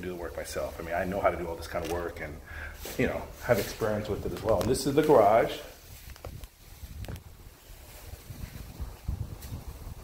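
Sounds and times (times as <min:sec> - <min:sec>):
wind rumbling on microphone: 0:03.9 - 0:10.0.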